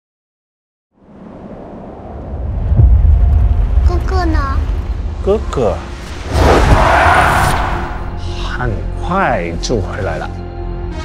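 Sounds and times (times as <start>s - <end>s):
deep windy rumble: 1.0s - 8.3s.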